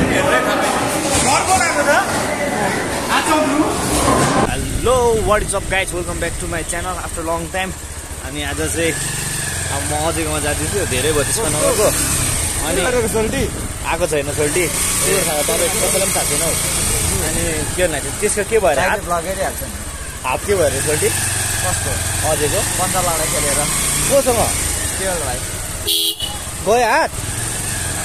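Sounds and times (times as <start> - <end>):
men talking: 0.0 - 25.8, 26.4 - 27.2
motorcycle engine droning: 0.0 - 28.0.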